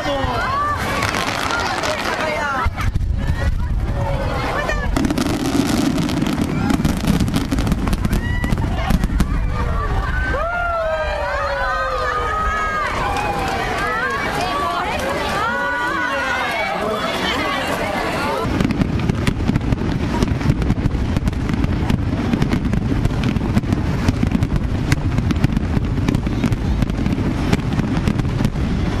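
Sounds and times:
fireworks crackling and popping: 0.0 - 29.0
spectators' voices: 0.0 - 29.0
low rumble: 18.4 - 29.0.

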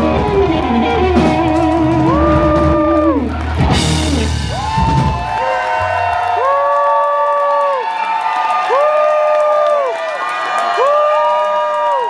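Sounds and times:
audience whooping: 0.0 - 12.0.

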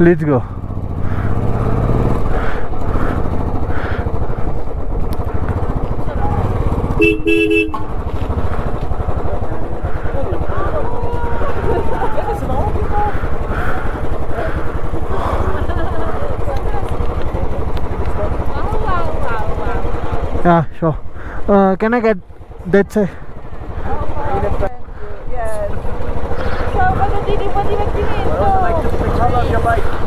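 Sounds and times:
motorcycle engine idling: 0.0 - 30.0
vehicle horn blast: 6.9 - 8.0.

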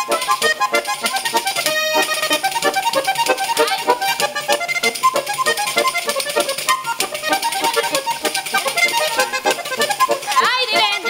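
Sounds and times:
button accordion dance tune: 0.0 - 11.0
tambourine beat: 0.0 - 11.0.

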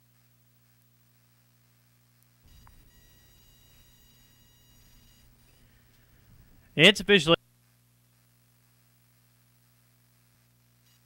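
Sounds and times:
faint electrical hum and hiss: 0.0 - 11.0.

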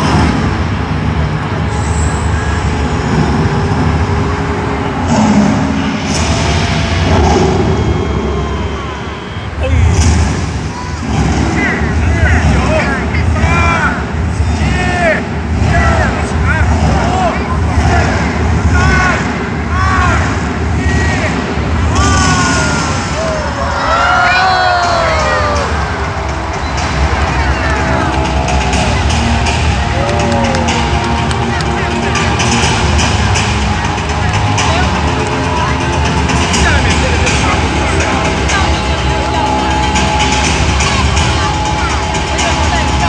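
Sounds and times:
rising and falling pitched sweeps: 0.0 - 20.7
heavy bass pulse: 0.0 - 43.0.

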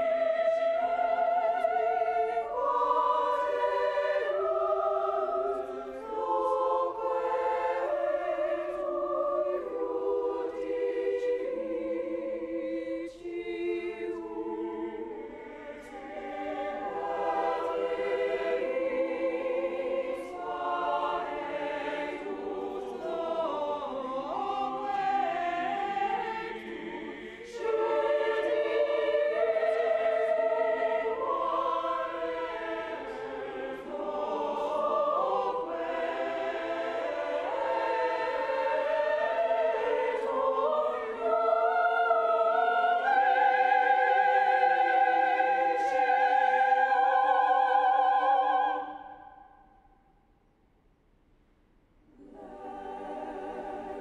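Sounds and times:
mixed choir singing: 0.0 - 49.6, 52.1 - 54.0.

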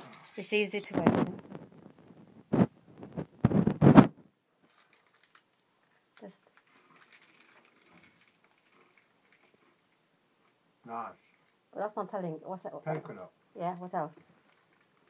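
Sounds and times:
foil wrapper rustling and tearing: 4.6 - 10.0, 14.1 - 15.0
faint crunching of chewing: 4.6 - 10.6, 14.1 - 15.0.

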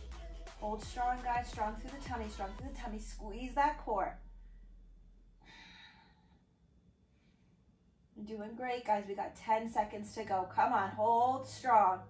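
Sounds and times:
woman exhaling: 5.4 - 6.4.

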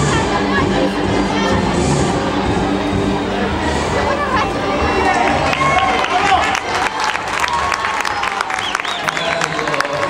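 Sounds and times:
crowd voices: 0.0 - 10.0
audience clapping: 5.0 - 10.0.

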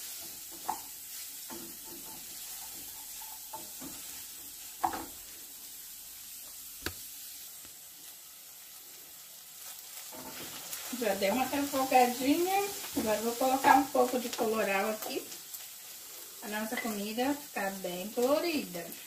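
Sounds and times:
food sizzling in oil: 0.0 - 19.0.

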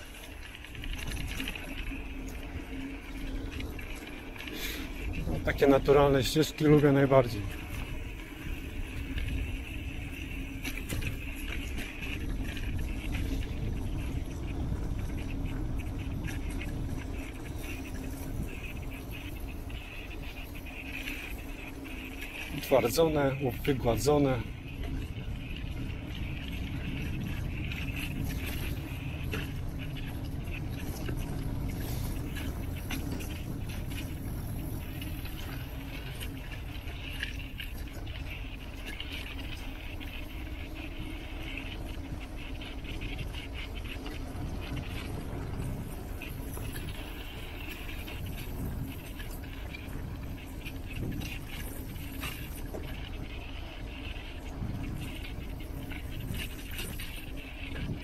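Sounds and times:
bicycle tyres rumbling on dirt: 0.0 - 58.0
bike clicks and rattles: 0.0 - 58.0
wind on microphone: 0.0 - 58.0.

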